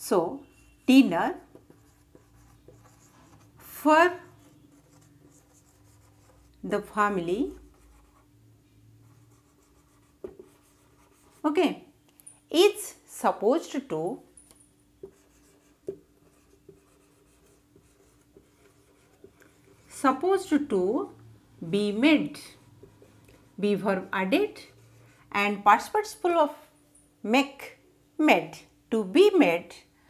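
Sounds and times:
faint steady hum: 0:00.0 - 0:30.0
marker pen scratching on whiteboard: 0:01.3 - 0:08.3, 0:09.0 - 0:11.6, 0:15.0 - 0:21.2, 0:21.9 - 0:25.2.

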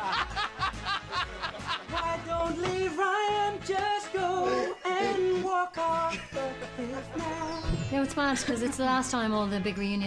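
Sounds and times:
man laughing heartily: 0:00.0 - 0:02.4, 0:04.4 - 0:05.4, 0:06.0 - 0:07.6.

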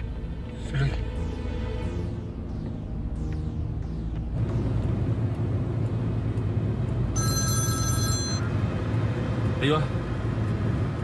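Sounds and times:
car engine and road noise: 0:00.0 - 0:11.0
mobile phone ringtone: 0:07.2 - 0:08.6.

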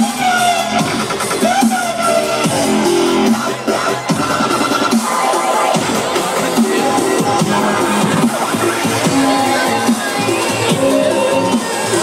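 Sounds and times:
dubstep over sound system: 0:00.0 - 0:12.0.

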